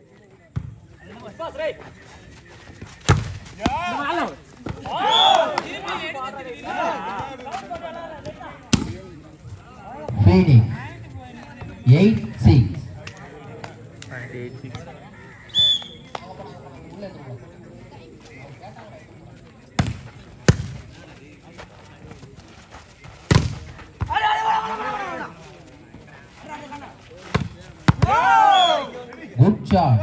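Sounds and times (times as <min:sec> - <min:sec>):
players shouting: 0:03.6 - 0:08.4, 0:23.3 - 0:25.6, 0:26.4 - 0:29.1.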